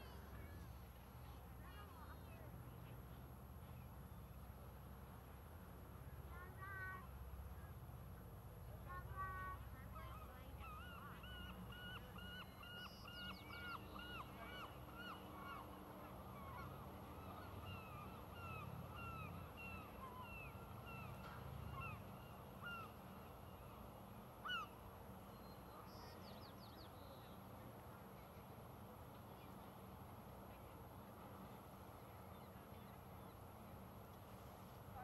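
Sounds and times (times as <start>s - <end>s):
bird calling: 10.0s - 23.7s, 24.4s - 26.3s.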